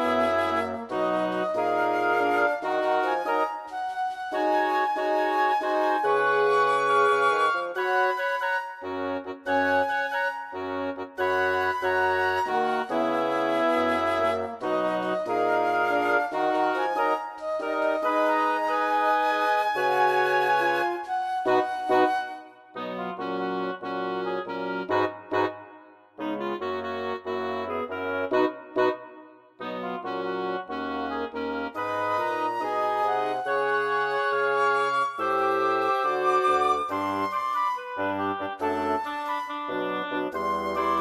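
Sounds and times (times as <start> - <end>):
synthesized wind quintet music: 0.0 - 41.0.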